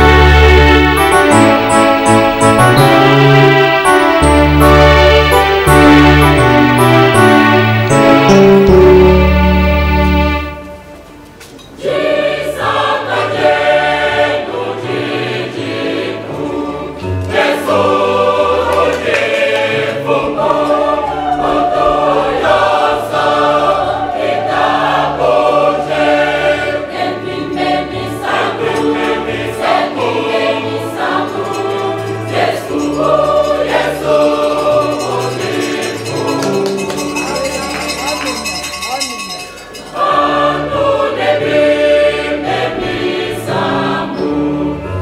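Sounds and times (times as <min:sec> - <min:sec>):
mixed choir singing a hymn: 0:00.0 - 0:10.9, 0:11.7 - 0:37.0, 0:39.9 - 0:45.0.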